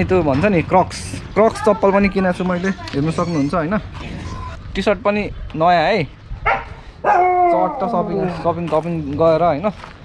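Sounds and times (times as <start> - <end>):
dog barking: 6.4 - 8.4.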